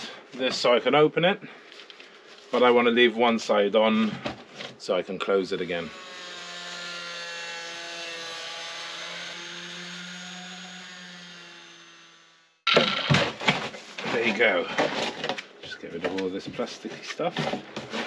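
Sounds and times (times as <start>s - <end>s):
angle grinder cutting plastic: 5.9s - 13.4s.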